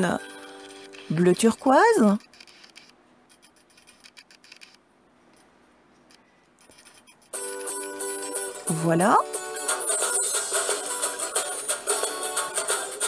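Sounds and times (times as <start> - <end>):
background music: 0.0 - 1.5, 7.4 - 13.0.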